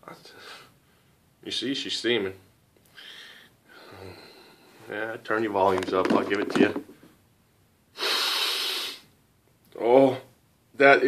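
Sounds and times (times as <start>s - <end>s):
man sniffing: 8.0s - 9.1s.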